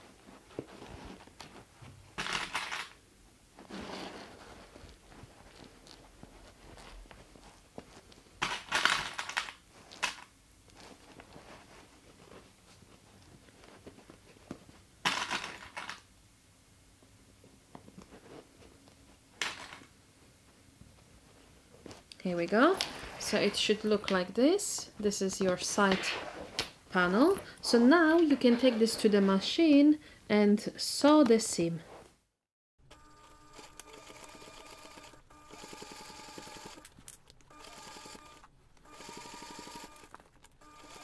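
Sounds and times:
stiff fabric rustling: 0:00.0 - 0:02.2, 0:03.5 - 0:08.4, 0:10.7 - 0:15.0, 0:20.9 - 0:29.8.

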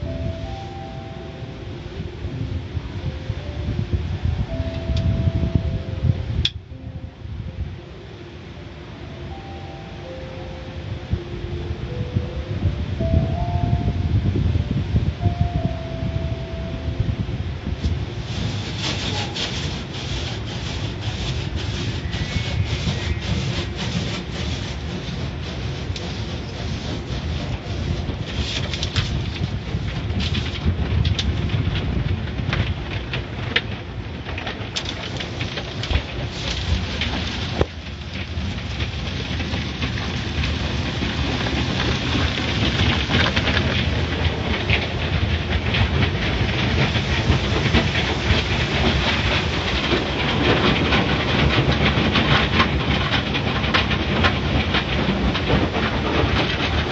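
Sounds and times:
car wash brushes rumbling: 0:08.2 - 0:56.9
water spray hissing on glass: 0:18.1 - 0:29.5, 0:35.8 - 0:37.6.

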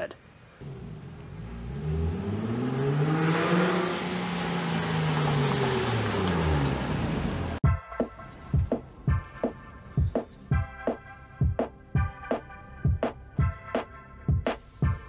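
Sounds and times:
car engine and exhaust driving by: 0:00.6 - 0:07.6.

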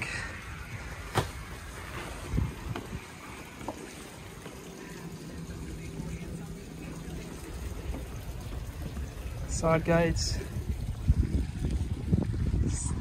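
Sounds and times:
wind rumbling on microphone: 0:00.0 - 0:03.6, 0:06.6 - 0:13.0.

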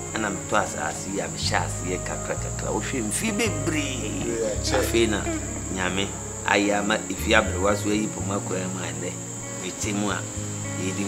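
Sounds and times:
low hum shifting in pitch: 0:00.0 - 0:09.3
man speaking: 0:00.2 - 0:11.0
high-pitched tone: 0:03.3 - 0:06.6.

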